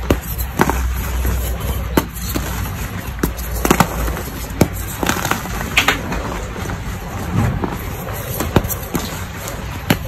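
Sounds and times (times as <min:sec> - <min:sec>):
chalk crunching by hand: 0:00.0 - 0:05.8
low background noise: 0:00.0 - 0:10.0.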